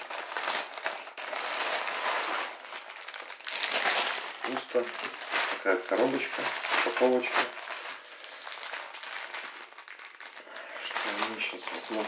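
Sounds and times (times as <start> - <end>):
plastic mailer crinkling: 0.0 - 12.0.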